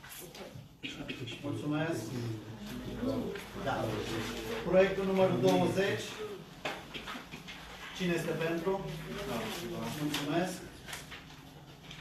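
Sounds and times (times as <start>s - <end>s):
faint murmur of voices: 0.1s - 7.4s.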